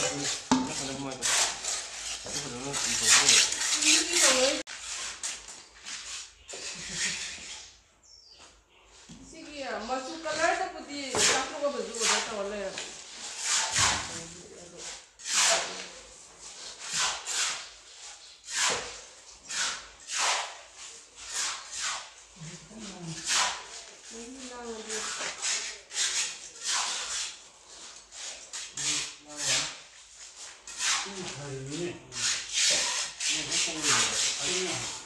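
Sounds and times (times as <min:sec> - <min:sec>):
short scraping sounds: 0:00.0 - 0:07.8, 0:13.1 - 0:35.0.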